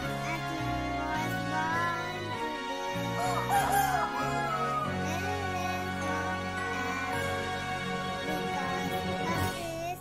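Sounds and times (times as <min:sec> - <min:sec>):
instrumental background music: 0:00.0 - 0:10.0
rooster crowing: 0:03.2 - 0:05.0.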